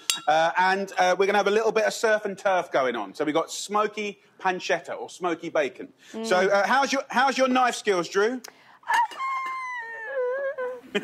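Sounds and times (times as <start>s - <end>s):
woman laughing: 8.9s - 11.0s.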